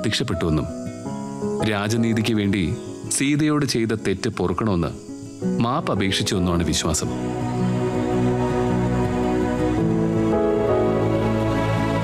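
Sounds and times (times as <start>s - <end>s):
background music: 0.0s - 12.0s
person speaking: 1.6s - 5.0s, 5.6s - 7.2s.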